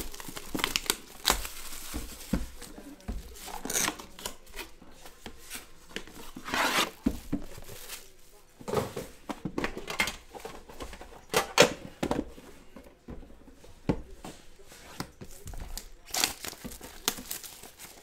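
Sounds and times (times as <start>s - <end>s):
plastic shrink wrap crinkling and tearing: 0.0s - 4.7s, 15.5s - 18.0s.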